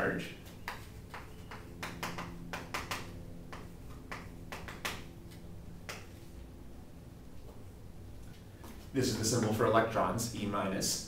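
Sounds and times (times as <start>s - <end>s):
faint low hum: 0.0s - 11.0s
chalk tapping and scratching: 0.5s - 5.0s.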